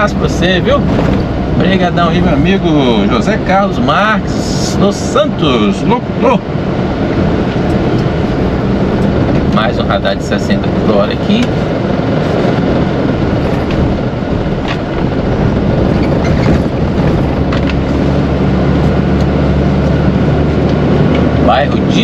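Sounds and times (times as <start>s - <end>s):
road noise: 0.0s - 22.0s
truck diesel engine: 0.0s - 22.0s.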